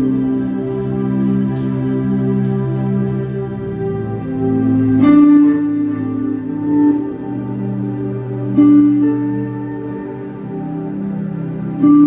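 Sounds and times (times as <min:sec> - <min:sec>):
electric guitar: 0:00.0 - 0:12.0
keyboard chords: 0:00.0 - 0:12.0.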